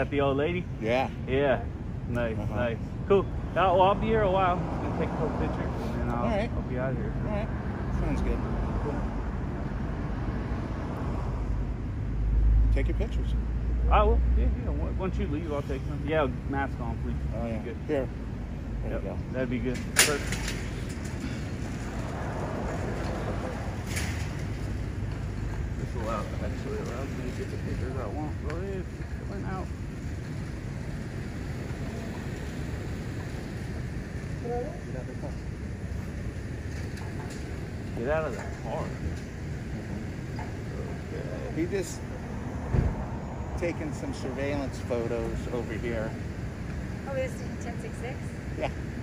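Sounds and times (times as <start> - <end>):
low traffic rumble: 0.0 - 49.0.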